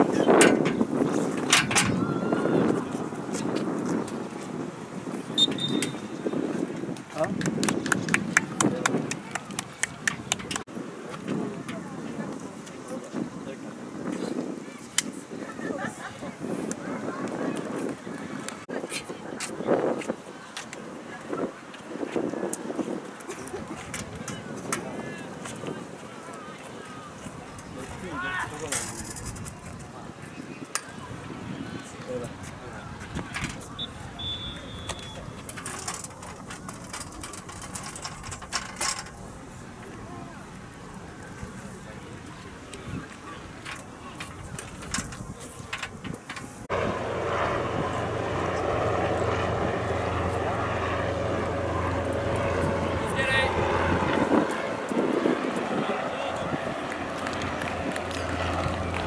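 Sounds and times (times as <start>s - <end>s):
distant indistinct voices: 0.0s - 7.3s, 8.3s - 59.0s
football players talking: 23.0s - 37.1s, 46.9s - 59.0s
steady low drone: 46.6s - 59.0s.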